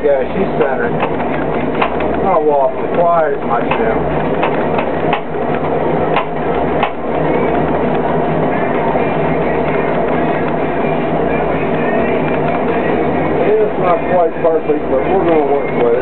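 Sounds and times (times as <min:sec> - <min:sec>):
background music: 0:00.0 - 0:16.0
potter's wheel running: 0:00.0 - 0:16.0.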